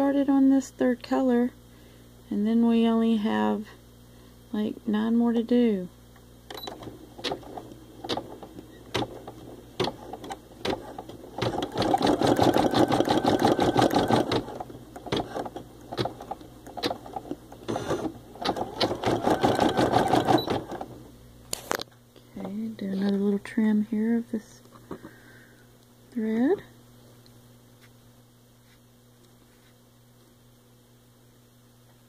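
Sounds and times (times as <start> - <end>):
embroidery machine stitching: 6.5 - 21.0.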